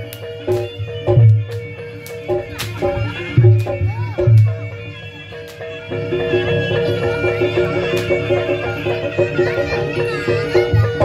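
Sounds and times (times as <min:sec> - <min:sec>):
drum beats: 0:00.0 - 0:11.0
reedy wind instrument melody: 0:00.0 - 0:11.0
struck metallophone notes: 0:00.0 - 0:11.0.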